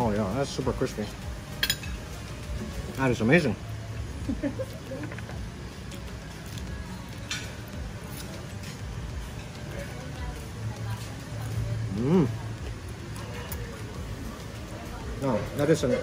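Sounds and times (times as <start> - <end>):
steady low hum: 0.0 - 16.0
person chuckling: 4.2 - 5.4.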